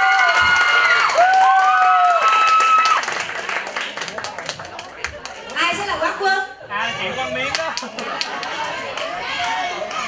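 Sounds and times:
audience applauding: 0.0s - 5.6s, 7.4s - 10.0s
people cheering: 0.0s - 5.7s, 6.7s - 10.0s.

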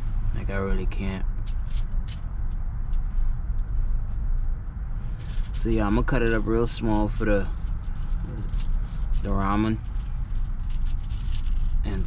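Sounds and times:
steady low rumble: 0.0s - 12.0s
aluminium foil crinkling: 1.4s - 2.3s, 5.1s - 12.0s.

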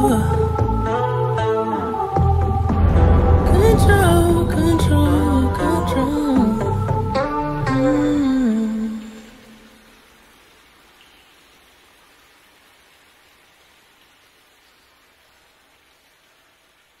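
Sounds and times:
faint even hiss: 0.0s - 17.0s
song's last held note: 2.6s - 8.3s.

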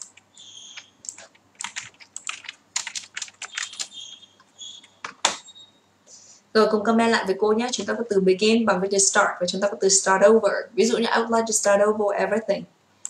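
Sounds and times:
keyboard keys tapping: 0.0s - 5.4s.

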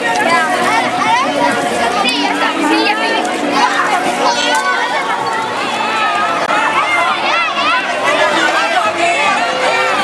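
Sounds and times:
children shouting and chattering: 0.0s - 10.0s.

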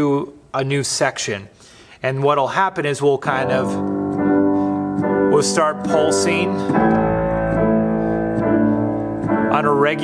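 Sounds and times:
keyboard playing sustained chords: 3.4s - 10.0s.

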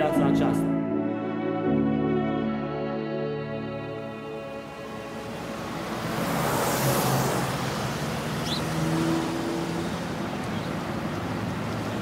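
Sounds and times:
car passing by: 4.6s - 12.0s.

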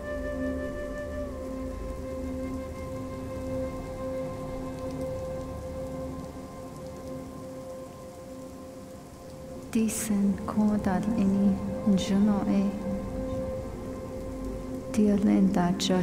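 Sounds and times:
rain falling: 0.0s - 16.0s.

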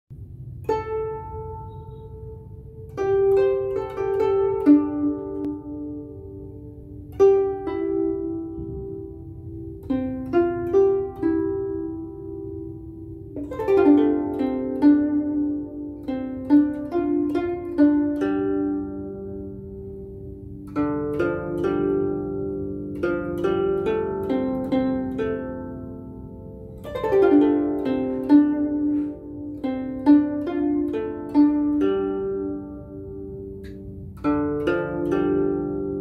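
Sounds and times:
plucked zither melody: 0.2s - 36.0s.

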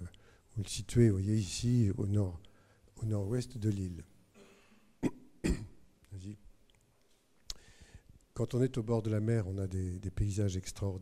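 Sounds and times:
man coughing into microphone: 4.4s - 5.8s.

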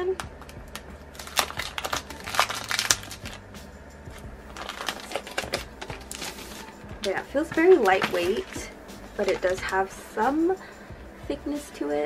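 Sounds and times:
plastic bag crinkling: 0.4s - 3.5s, 4.1s - 9.9s.

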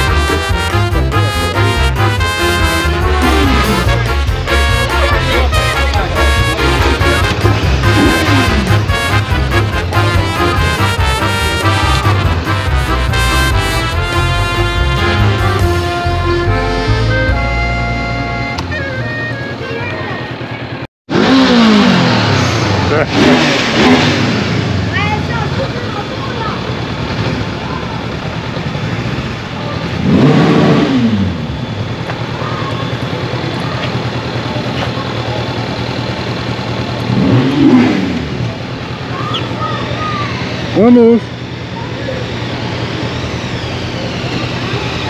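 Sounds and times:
motorcycle engine revving: 0.0s - 17.4s, 18.2s - 45.0s
brass music: 0.0s - 20.1s.

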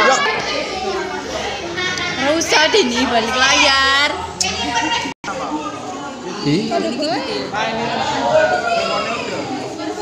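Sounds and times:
girls talking and calling out: 0.0s - 5.2s.

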